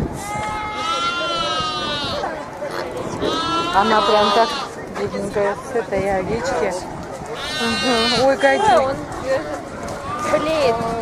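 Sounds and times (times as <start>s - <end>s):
lamb bleating: 0.2s - 4.7s, 7.4s - 8.2s.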